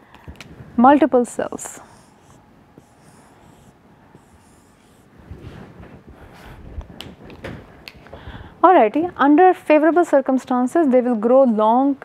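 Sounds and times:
marker drawing on whiteboard: 0:01.4 - 0:05.1.

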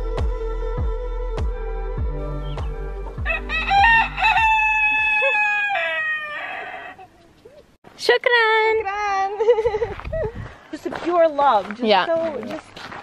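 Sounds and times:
background music with low beat: 0:00.0 - 0:04.8
rooster crowing: 0:03.2 - 0:07.1.

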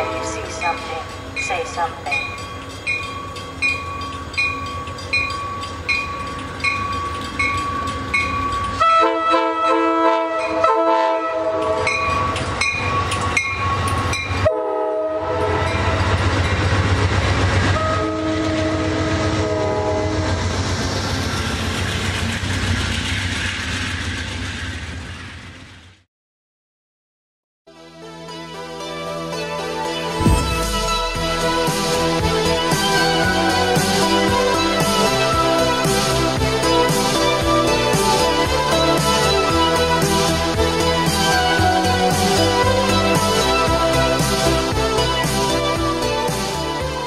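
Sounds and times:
train horn: 0:00.0 - 0:01.0, 0:08.8 - 0:12.1, 0:14.4 - 0:16.2, 0:17.8 - 0:20.4
train bell ringing: 0:00.0 - 0:08.9, 0:11.5 - 0:14.5, 0:15.6 - 0:16.7
train wheels and engine rumble: 0:00.0 - 0:26.1, 0:30.1 - 0:47.0.

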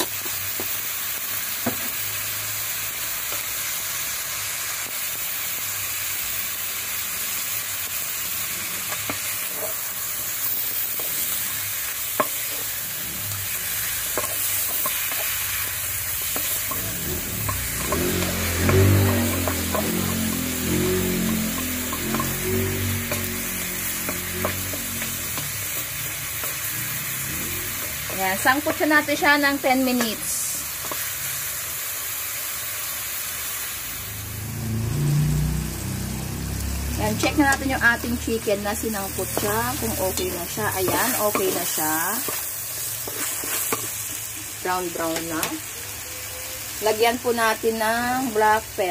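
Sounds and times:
chicken sizzling in hot oil: 0:00.0 - 0:48.9.

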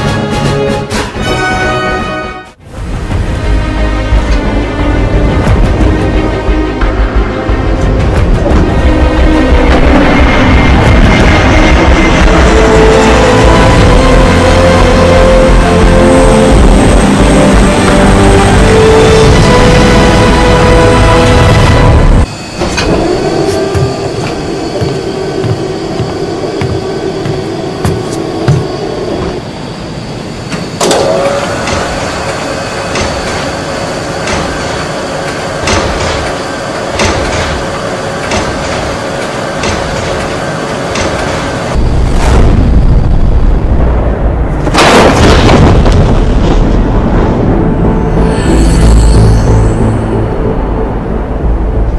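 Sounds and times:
soundtrack music: 0:00.0 - 0:28.6, 0:41.0 - 0:51.9
heavy low rumble: 0:02.6 - 0:29.6, 0:41.7 - 0:51.9
steady tones: 0:03.3 - 0:44.6.

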